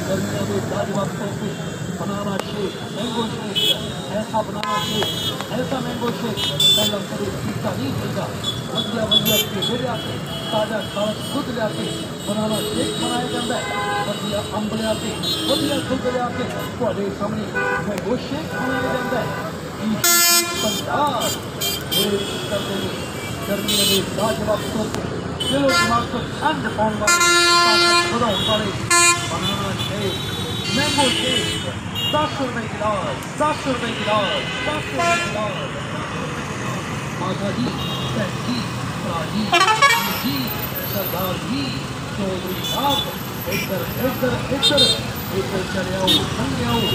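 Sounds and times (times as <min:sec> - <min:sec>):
passing road traffic: 0:00.0 - 0:46.9
voices: 0:00.0 - 0:46.9
vehicle horn blast: 0:27.1 - 0:32.2, 0:33.9 - 0:35.4, 0:39.5 - 0:40.2.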